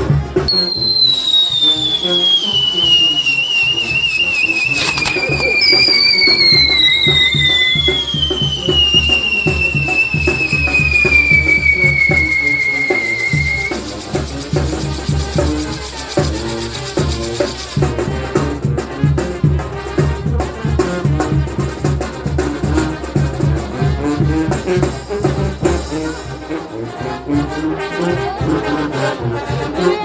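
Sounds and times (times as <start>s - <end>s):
music with drum beat: 0.0s - 26.6s
whistling fireworks: 0.5s - 17.8s
firework crack: 0.5s - 18.0s.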